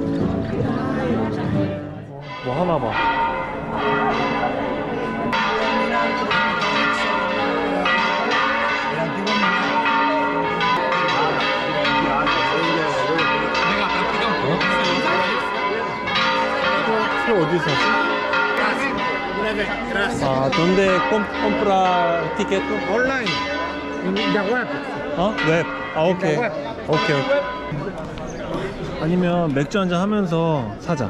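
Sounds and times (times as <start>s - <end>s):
church bells pealing: 0.0s - 30.8s
crowd chatter: 0.0s - 31.0s.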